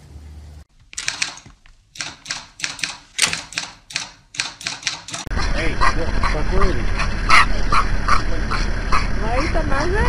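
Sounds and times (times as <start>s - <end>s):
typewriter key clacks: 1.0s - 5.3s.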